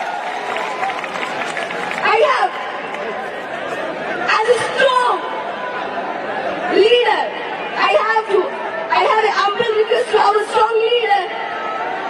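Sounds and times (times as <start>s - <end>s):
chatter: 1.5s - 12.0s
woman talking into a microphone: 6.7s - 11.5s.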